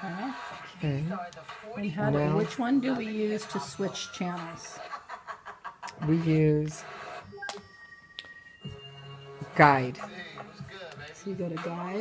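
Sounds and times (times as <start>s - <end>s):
television background music: 0.0s - 12.0s.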